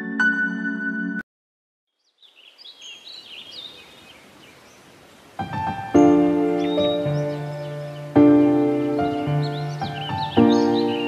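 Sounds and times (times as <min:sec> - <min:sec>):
birds chirping: 0:01.9 - 0:11.0
soft outdoor ambience: 0:01.9 - 0:11.0
piano piece: 0:05.4 - 0:11.0.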